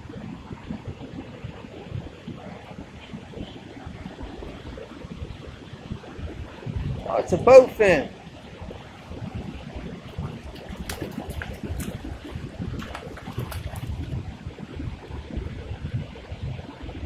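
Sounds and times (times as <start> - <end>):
wind: 0.0 - 17.0
fish splashing: 10.0 - 14.4.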